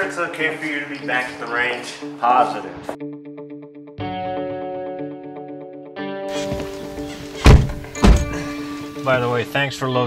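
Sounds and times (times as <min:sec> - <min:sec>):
background music sustained notes: 0:00.0 - 0:10.0
truck doors slamming shut: 0:07.3 - 0:08.5.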